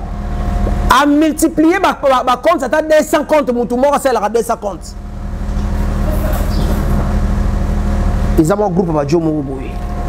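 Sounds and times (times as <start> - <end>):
low steady engine hum: 0.0 - 10.0
man speaking: 0.9 - 5.0, 8.4 - 9.8.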